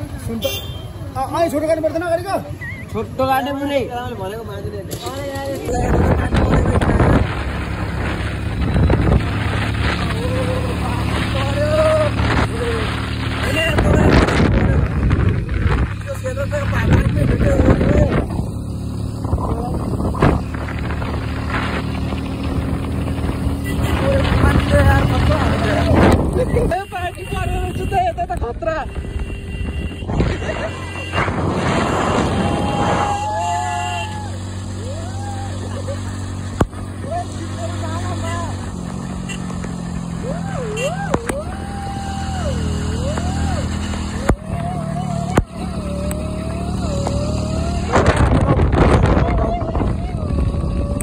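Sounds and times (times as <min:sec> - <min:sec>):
vehicle engine running: 0:04.3 - 0:51.0
wind on microphone: 0:13.7 - 0:16.0, 0:47.6 - 0:51.0
person crying out: 0:49.3 - 0:51.0.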